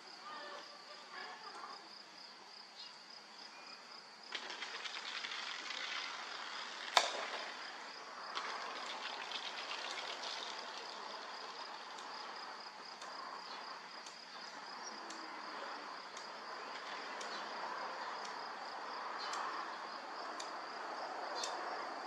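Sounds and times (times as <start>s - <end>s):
insects chirping: 0.0s - 22.0s
outdoor background hiss: 0.0s - 22.0s.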